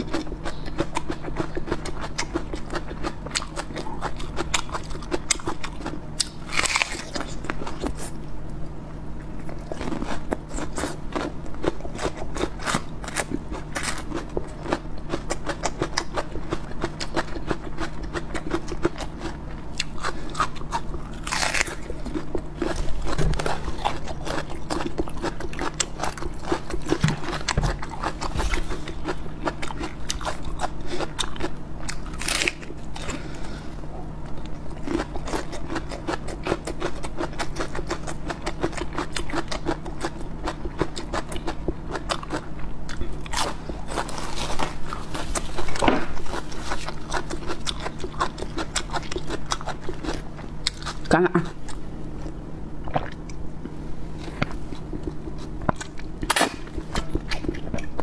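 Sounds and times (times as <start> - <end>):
onion being bitten and chewed: 0.0 - 58.0.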